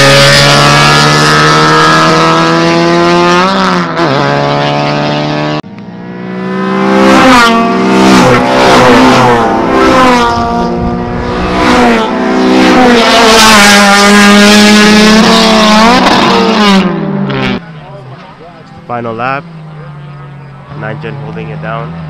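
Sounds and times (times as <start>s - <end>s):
car engine accelerating hard: 0.0s - 22.0s.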